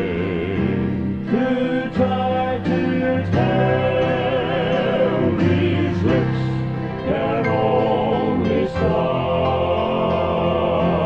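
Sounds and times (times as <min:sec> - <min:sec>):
instrumental accompaniment: 0:00.0 - 0:11.0
male vocal quartet singing: 0:00.0 - 0:11.0.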